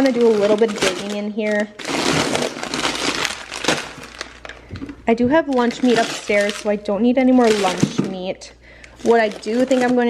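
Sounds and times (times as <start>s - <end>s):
frozen plastic bags crinkling: 0.0s - 10.0s.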